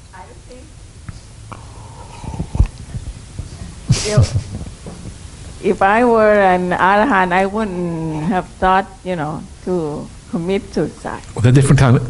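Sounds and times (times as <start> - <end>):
gulping from a mug: 1.6 - 2.8.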